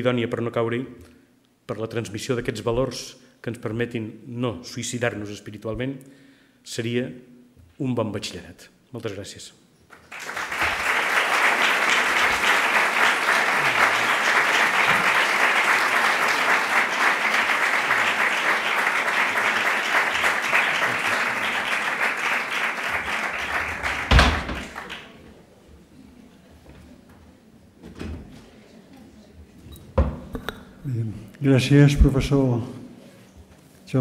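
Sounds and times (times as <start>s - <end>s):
audience applauding: 9.9s - 25.2s
loud thump: 24.1s - 24.7s.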